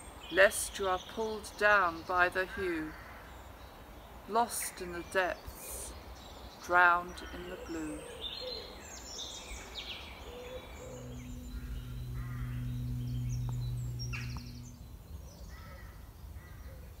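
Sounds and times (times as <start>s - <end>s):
birds chirping: 5.0s - 15.4s
steady low hum: 10.6s - 15.5s.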